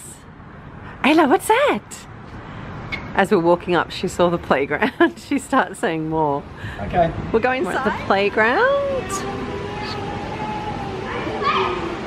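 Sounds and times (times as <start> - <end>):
distant voices: 1.9 - 12.0
children playing: 8.7 - 12.0
high voice calling out: 8.7 - 12.0.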